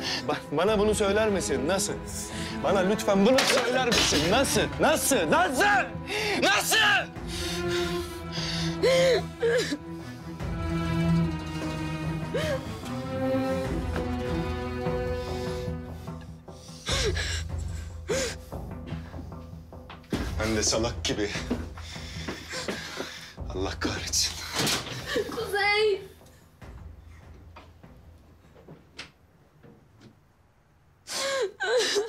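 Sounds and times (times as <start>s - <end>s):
soft background music: 0.0s - 30.0s
woman sobbing: 8.6s - 9.8s, 12.2s - 12.8s, 16.8s - 17.5s, 24.9s - 25.6s, 31.1s - 32.0s
woman crying loudly: 31.1s - 32.0s.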